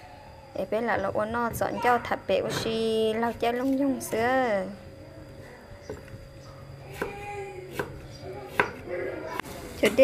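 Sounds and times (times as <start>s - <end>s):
knife chopping on wooden board: 6.9s - 8.8s.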